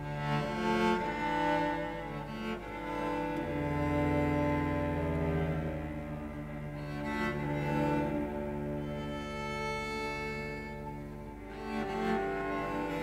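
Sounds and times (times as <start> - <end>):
slow instrumental music: 0.0 - 13.0.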